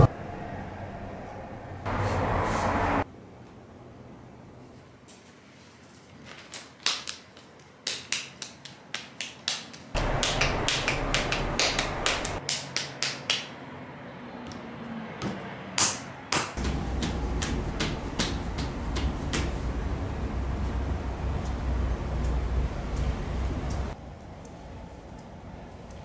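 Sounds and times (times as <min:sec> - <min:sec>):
hands patting wet clay: 0:16.4 - 0:19.6.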